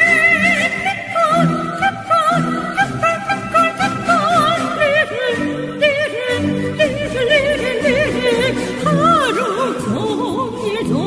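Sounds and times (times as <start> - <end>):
woman singing with vibrato: 0.0 - 11.0.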